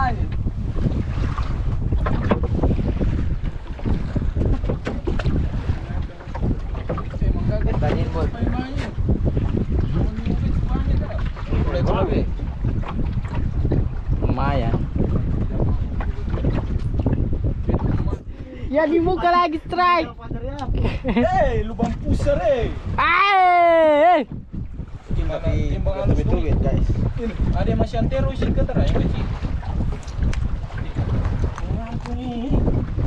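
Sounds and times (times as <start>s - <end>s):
waves sloshing against hull: 0.0s - 33.0s
wind rumbling on microphone: 0.0s - 33.0s.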